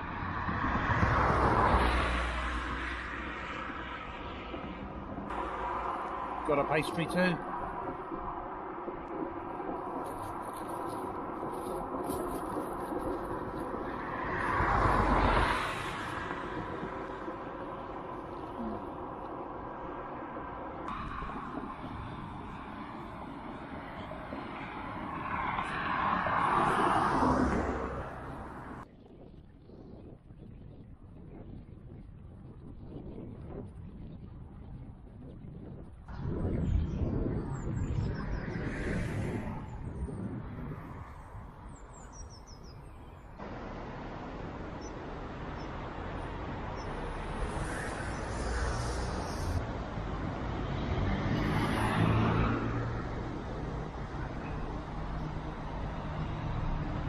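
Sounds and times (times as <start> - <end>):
cars passing: 0.0 - 28.9, 36.1 - 57.0.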